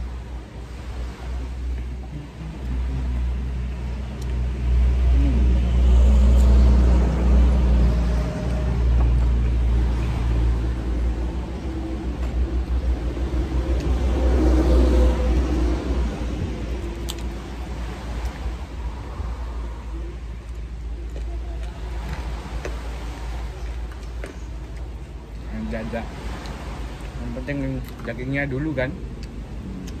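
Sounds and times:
vehicle engine rumbling: 0.0 - 30.0.

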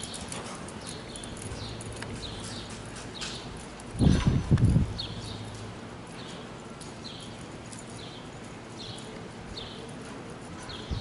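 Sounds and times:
hoofbeats on dirt: 0.0 - 11.0.

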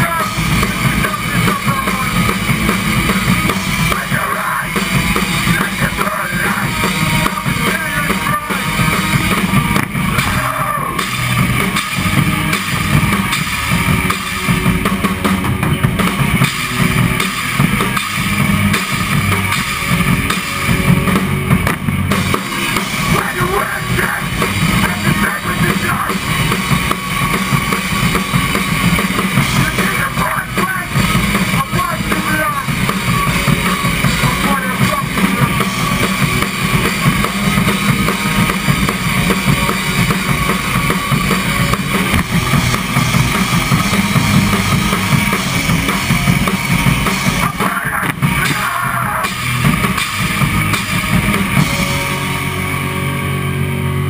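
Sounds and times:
drum kit with driving bass drum: 0.0 - 54.0
electric guitars and bass: 0.0 - 54.0.

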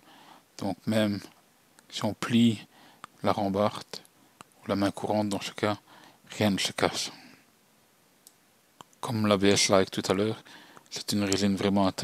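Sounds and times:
person speaking: 0.6 - 7.4, 8.8 - 12.0.

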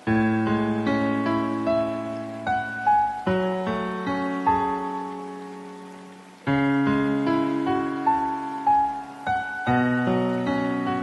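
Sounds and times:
slow solo piano chords: 0.0 - 11.0.

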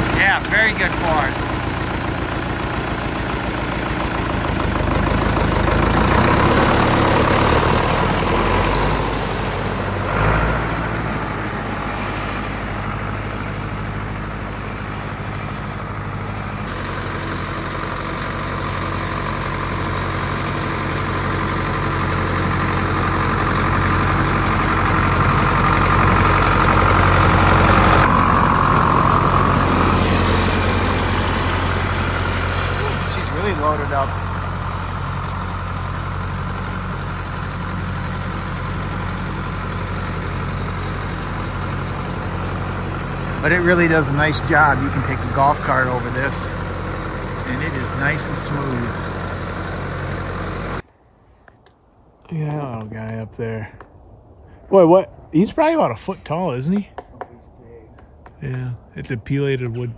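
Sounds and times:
tractor diesel engine running: 0.0 - 50.9.

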